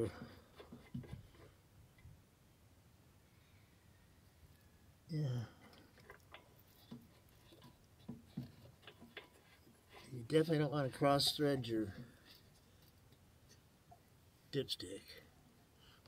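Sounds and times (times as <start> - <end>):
faint clicks and taps: 5.6 - 10.1.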